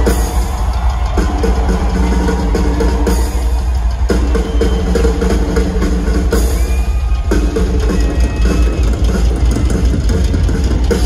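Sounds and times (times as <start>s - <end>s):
fast bass drum beats: 0.0s - 11.0s.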